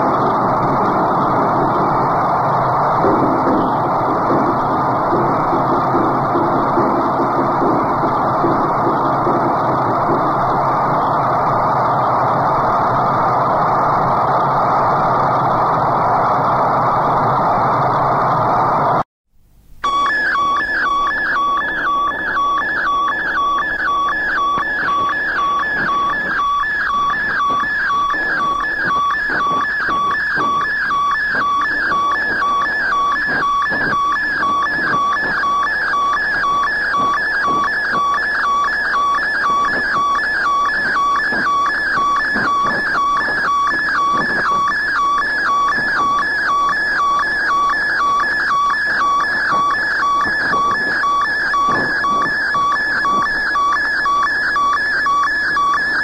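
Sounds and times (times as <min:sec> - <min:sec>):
two-pitch electronic tone: 0:00.0 - 0:13.1, 0:19.8 - 0:56.0
noisy rumbling undertone: 0:00.0 - 0:19.0.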